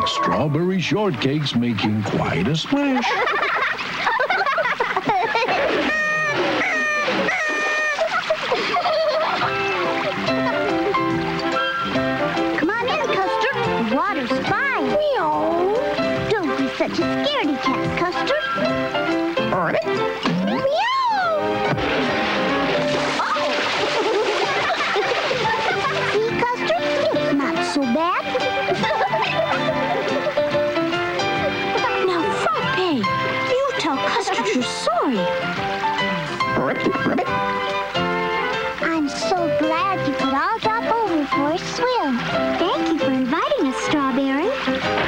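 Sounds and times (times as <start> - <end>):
background music: 0.0 - 45.0
cartoon water splash: 2.0 - 12.0, 20.2 - 32.8
wavering sing-song voice crying: 5.8 - 8.3.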